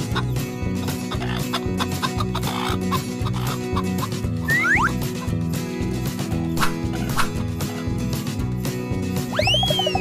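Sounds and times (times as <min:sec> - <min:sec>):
hens clucking: 0:00.0 - 0:04.2
background music: 0:00.0 - 0:10.0.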